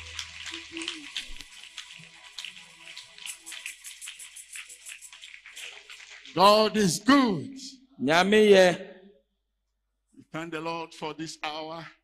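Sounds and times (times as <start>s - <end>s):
music: 0.0s - 5.0s
congregation applauding: 0.0s - 7.4s.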